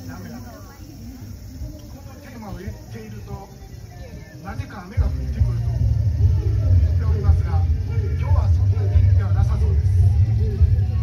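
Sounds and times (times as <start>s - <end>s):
heavy low rumble: 5.0s - 11.0s.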